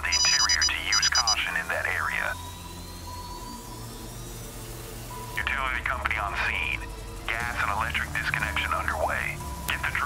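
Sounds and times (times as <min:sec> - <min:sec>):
dispatcher voice over radio: 0:00.0 - 0:02.4, 0:05.4 - 0:10.0
low steady background drone: 0:00.0 - 0:10.0.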